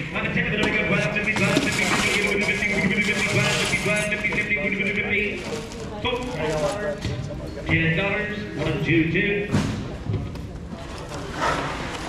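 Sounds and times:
rustling and clatter of boxes: 0:00.0 - 0:08.8, 0:09.4 - 0:12.0
people talking indistinctly: 0:00.0 - 0:11.6.

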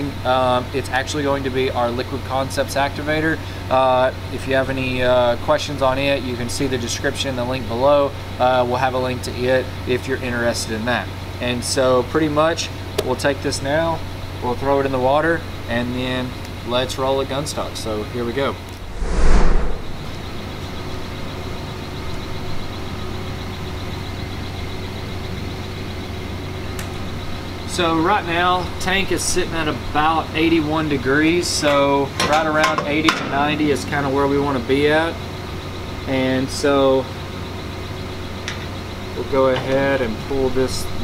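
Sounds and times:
low machinery hum: 0:13.9 - 0:32.1
loud rushing burst: 0:18.8 - 0:20.2.

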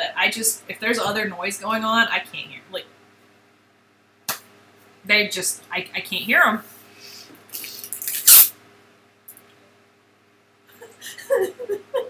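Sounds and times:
person talking: 0:00.0 - 0:02.8.

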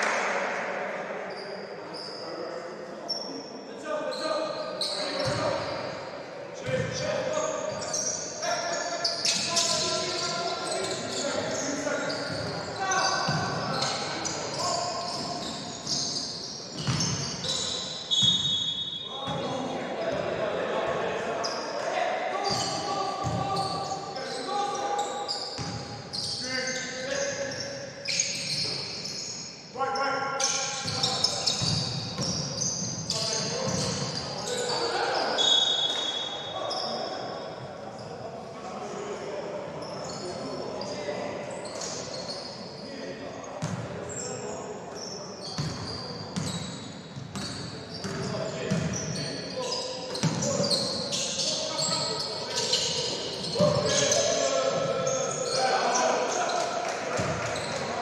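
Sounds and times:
basketball bouncing on wooden court: 0:16.8 - 0:17.2, 0:45.6 - 0:45.8, 0:47.2 - 0:49.0
people shouting in a hall: 0:53.5 - 0:58.0.

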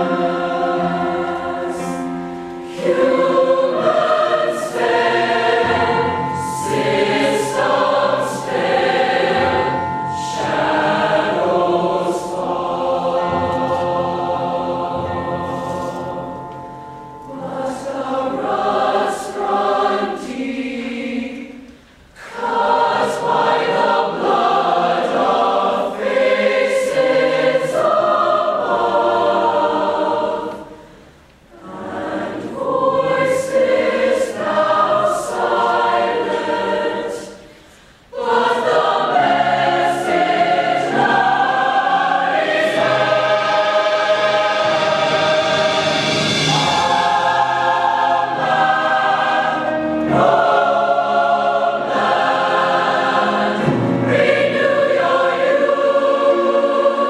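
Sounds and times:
choir singing sustained chords: 0:00.0 - 0:57.0.

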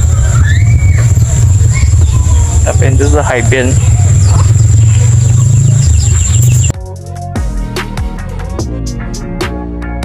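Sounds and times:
high-pitched whine: 0:00.0 - 0:06.7
wind buffeting microphone: 0:00.0 - 0:06.7
music with plucked guitar and drums: 0:06.4 - 0:10.0.

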